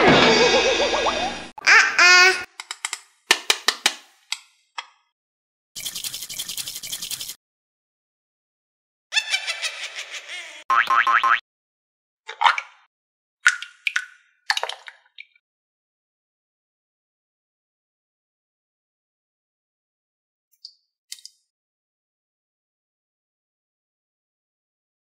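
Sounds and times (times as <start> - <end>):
quick run of clicks: 5.8 - 7.4
springy cartoon boing: 10.7 - 11.4.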